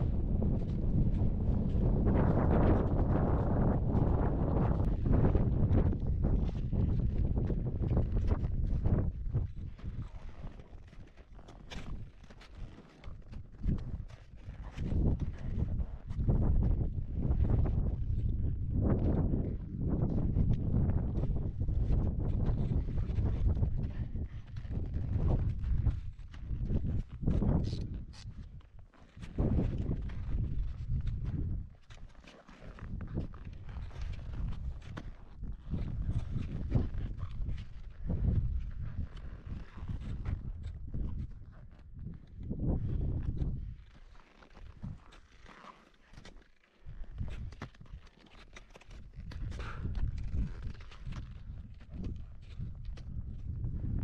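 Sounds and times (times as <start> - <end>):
wind gusting on microphone: 0.0 - 10.0, 14.8 - 28.6, 29.3 - 31.7, 32.8 - 43.9, 49.0 - 54.0.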